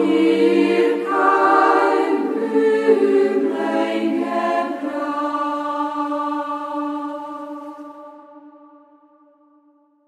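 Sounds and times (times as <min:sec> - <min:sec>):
choir singing held chords: 0:00.0 - 0:09.9.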